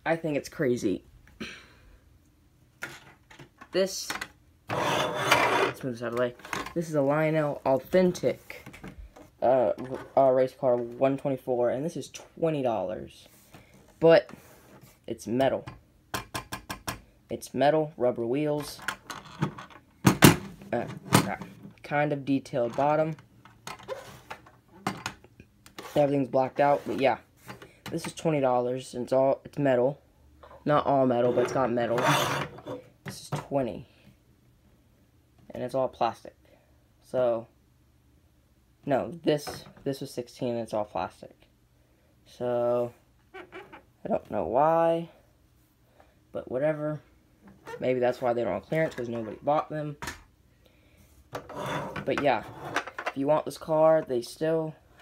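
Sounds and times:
plastic toy car scraping on table: 4.7 - 5.8, 31.2 - 32.9, 51.4 - 52.9
toy car rubbing: 4.7 - 5.8, 31.9 - 32.8.

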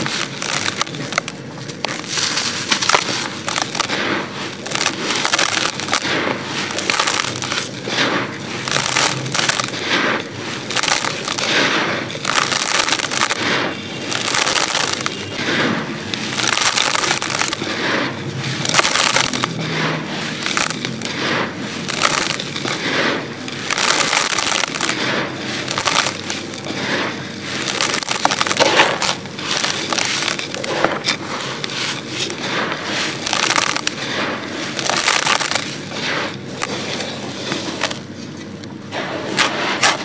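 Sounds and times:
sand poured into clay pot: 0.0 - 40.0.

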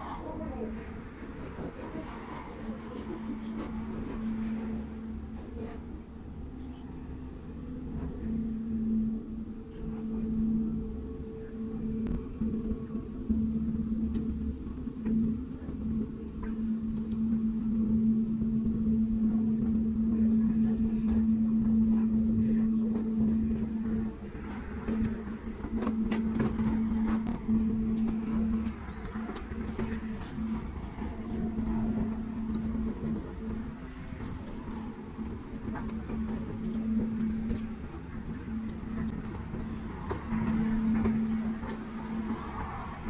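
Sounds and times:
deep rumble: 0.0 - 43.0
ship diesel engines droning: 0.0 - 43.0.

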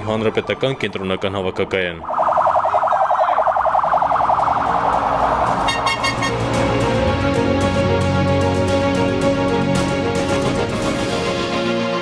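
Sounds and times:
police siren warbling: 2.0 - 6.2.

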